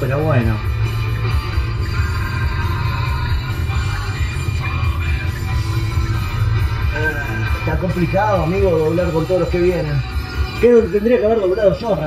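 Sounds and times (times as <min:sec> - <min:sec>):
car radio music: 0:00.0 - 0:12.0.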